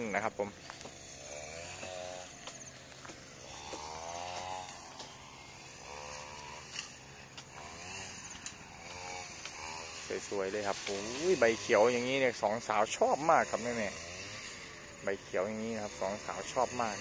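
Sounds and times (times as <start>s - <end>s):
small engine revving: 0.0s - 17.0s.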